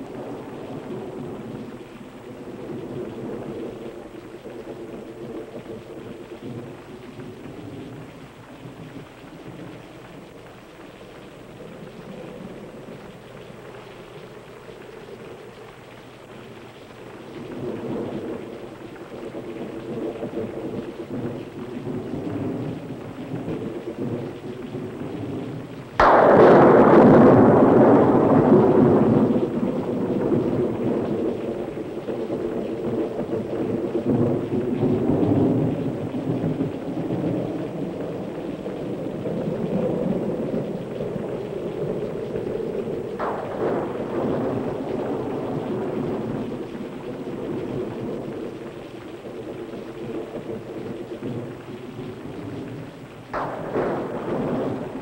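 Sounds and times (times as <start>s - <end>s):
rain-like rushing: 0.0s - 55.0s
thunder crash: 21.9s - 37.8s, 39.2s - 48.6s, 53.3s - 55.0s.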